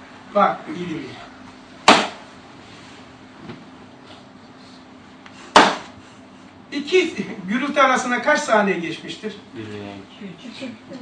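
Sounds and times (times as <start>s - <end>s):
book slapped on wooden lectern: 1.9s - 2.2s, 5.5s - 6.0s.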